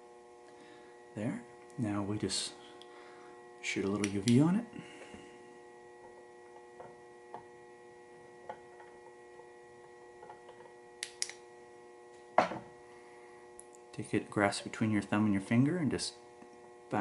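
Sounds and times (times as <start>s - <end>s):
faint electrical hum: 0.0s - 17.0s
small clicks: 11.0s - 11.4s
knock from handling: 12.4s - 12.7s.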